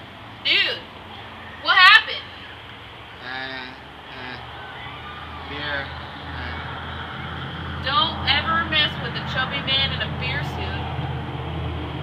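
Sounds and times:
faint talk: 3.2s - 8.6s.

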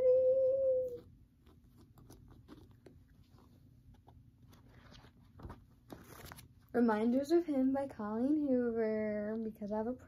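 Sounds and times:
paperback book handled: 1.3s - 6.7s.

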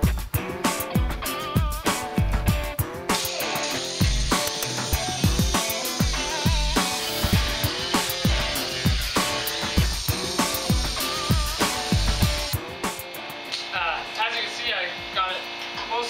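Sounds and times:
drum beat: 0.0s - 13.9s
rock music: 0.0s - 15.8s.

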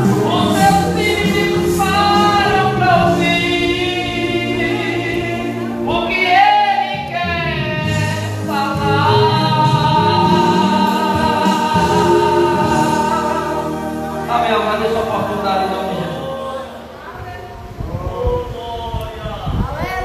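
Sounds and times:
low accompaniment: 0.0s - 17.0s
man singing a hymn: 0.0s - 17.0s.

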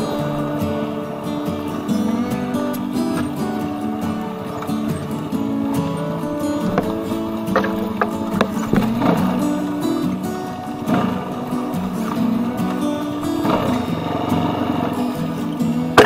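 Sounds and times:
background music melody: 0.0s - 16.0s.

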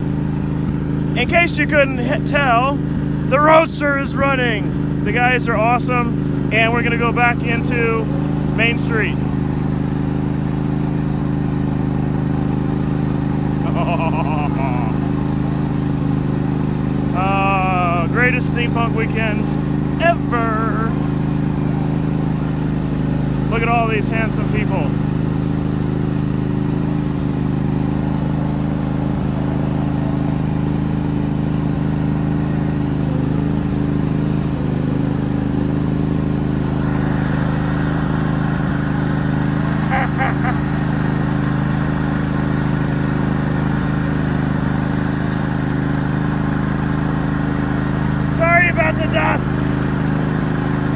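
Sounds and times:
car motor low hum: 0.0s - 50.9s
brief voices: 39.9s - 40.6s, 48.3s - 49.7s.

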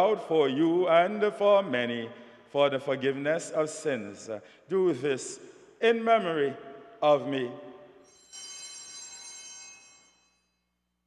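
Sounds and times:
bells ringing: 8.0s - 10.7s.

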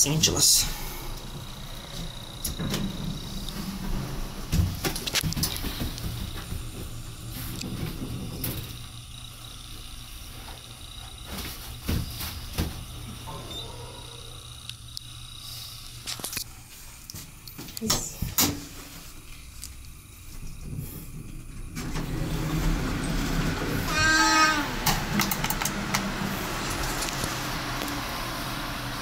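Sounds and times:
elevator low hum: 0.0s - 17.1s, 18.0s - 29.0s
elevator car and door clunks: 1.2s - 6.7s, 21.8s - 26.2s.

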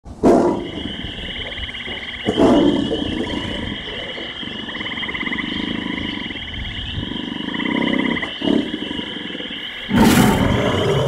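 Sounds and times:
tiger roaring: 7.3s - 11.0s.

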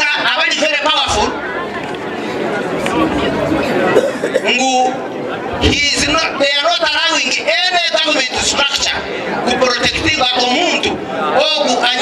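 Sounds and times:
man speaking into a microphone: 0.0s - 1.5s, 3.9s - 12.0s
crowd chatter: 0.0s - 12.0s.

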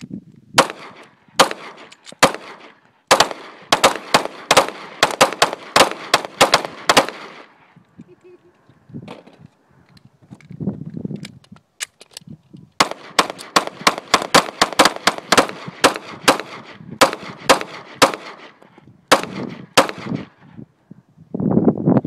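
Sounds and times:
rapid sharp bangs: 0.6s - 7.5s, 12.8s - 20.3s.

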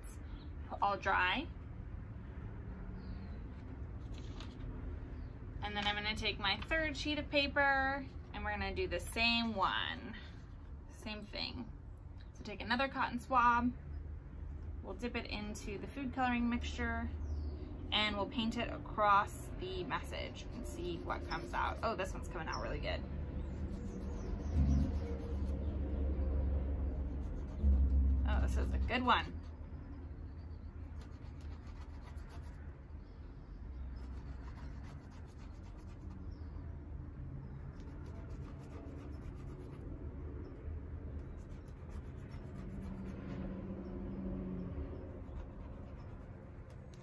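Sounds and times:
low background rumble: 0.0s - 47.0s
low steady hum: 0.0s - 47.0s
cotton swab scratching paper: 20.4s - 22.3s, 23.5s - 25.8s, 26.9s - 29.6s, 30.9s - 32.6s, 34.0s - 36.3s, 37.7s - 39.8s, 41.2s - 43.4s, 45.2s - 47.0s.

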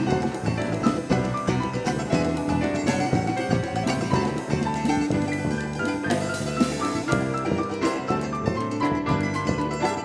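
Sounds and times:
drum kit: 0.0s - 10.0s
electric bass: 0.0s - 10.0s
picked mandolin: 0.0s - 10.0s.

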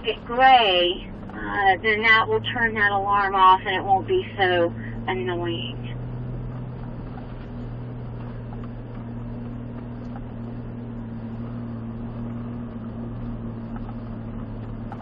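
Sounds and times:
truck engine hum: 0.0s - 15.0s.

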